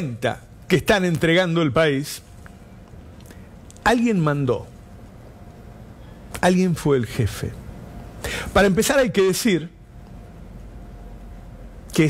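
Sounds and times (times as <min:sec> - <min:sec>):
man speaking: 0:00.0 - 0:02.3, 0:03.8 - 0:04.8, 0:06.4 - 0:07.6, 0:08.5 - 0:09.8
faint hum: 0:00.0 - 0:12.0.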